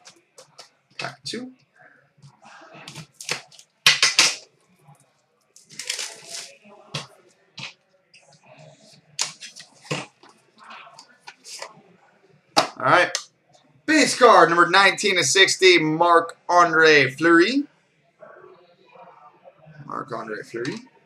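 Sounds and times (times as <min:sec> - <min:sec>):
card pack wrapper rustling: 0:05.6 - 0:06.5.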